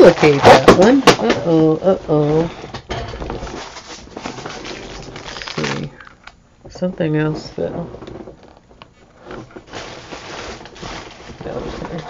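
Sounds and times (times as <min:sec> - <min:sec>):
rustling and handling noise: 0:00.0 - 0:12.0.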